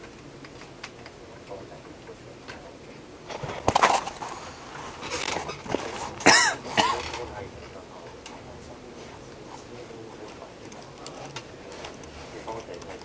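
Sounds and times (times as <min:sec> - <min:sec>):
person coughing: 0:06.2 - 0:07.2.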